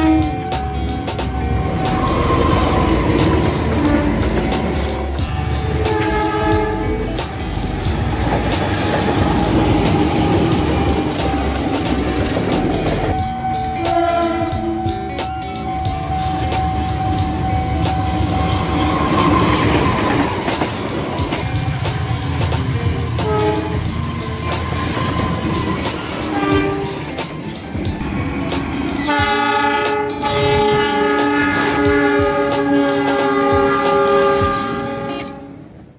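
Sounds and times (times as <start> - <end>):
locomotive horn: 0.0 - 0.8, 1.6 - 7.6, 13.6 - 15.1, 23.1 - 24.2, 24.9 - 27.2, 29.0 - 35.8
train rumble: 0.0 - 35.9.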